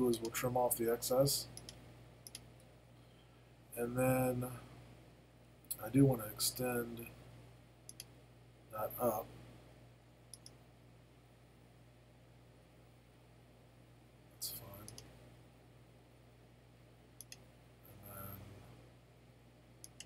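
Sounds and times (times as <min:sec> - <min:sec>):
computer mouse clicking: 0:10.3 - 0:10.6, 0:14.8 - 0:15.1, 0:17.2 - 0:17.4
faint low murmur: 0:17.2 - 0:20.0.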